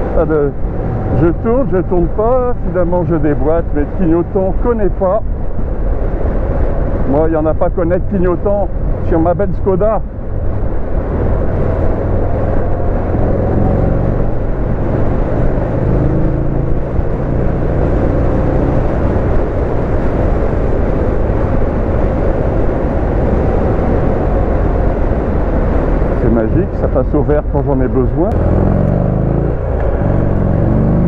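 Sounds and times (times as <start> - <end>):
wind rush on microphone: 0.0 - 31.0.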